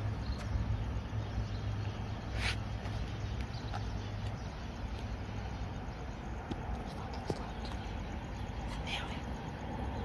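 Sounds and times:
distant train rumble: 0.0s - 10.0s.

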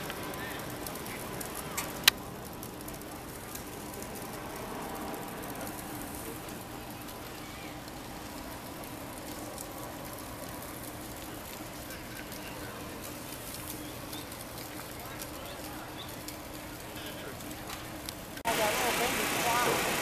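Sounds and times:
faint distant voices: 0.0s - 20.0s.

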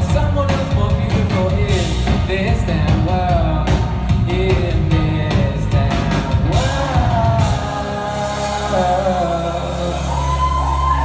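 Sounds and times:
crowd singing and calling: 0.0s - 11.0s
band holding a chord: 4.4s - 10.8s.

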